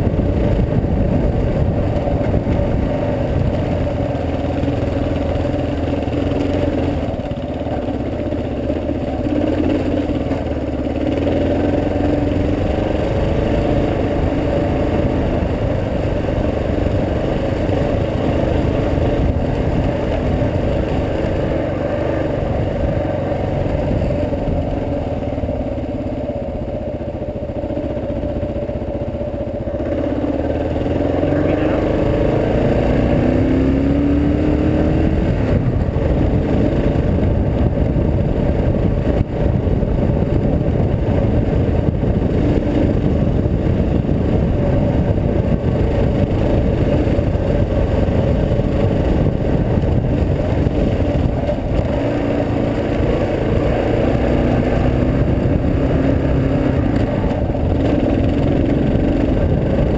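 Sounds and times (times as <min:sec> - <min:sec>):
wind noise: 0:00.0 - 0:27.6, 0:29.2 - 0:59.9
motorcycle engine running: 0:00.0 - 0:59.9.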